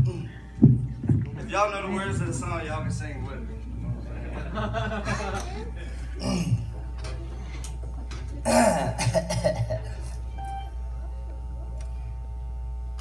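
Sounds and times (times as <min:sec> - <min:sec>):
low electrical hum: 0:00.0 - 0:13.0
man clearing his throat: 0:05.1 - 0:06.8, 0:08.4 - 0:10.1.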